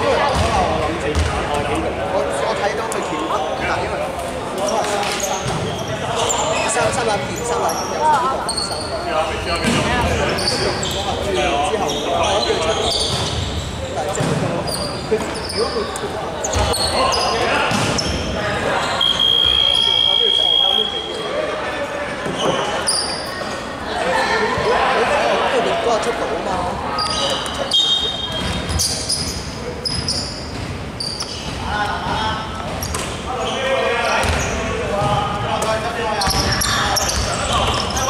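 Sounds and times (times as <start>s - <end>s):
echoing indistinct voices: 0.0s - 38.0s
basketball bouncing on wooden court: 0.4s - 1.4s, 34.2s - 35.1s.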